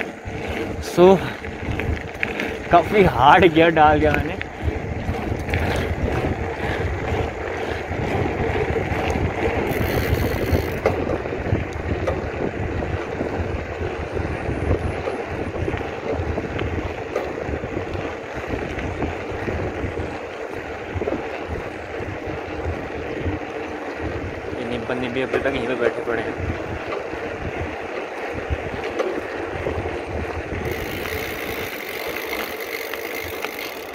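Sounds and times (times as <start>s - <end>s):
bike tyres rumbling on gravel: 0.0s - 33.9s
wind buffeting microphone: 0.0s - 33.9s.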